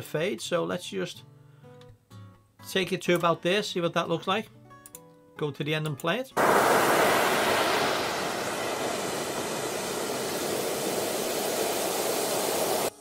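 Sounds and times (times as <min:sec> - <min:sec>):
waves breaking: 0:06.4 - 0:12.9.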